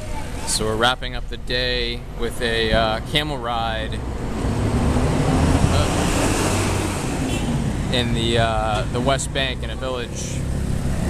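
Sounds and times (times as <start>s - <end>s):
vehicle passing close by: 4.0s - 11.0s.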